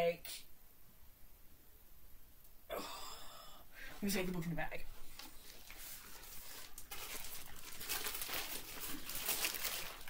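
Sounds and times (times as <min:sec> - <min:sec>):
paper bag rustling: 0:05.1 - 0:10.0.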